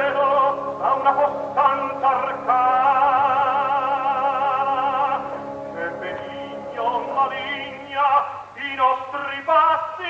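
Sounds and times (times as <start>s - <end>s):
operatic tenor singing: 0.0s - 10.0s.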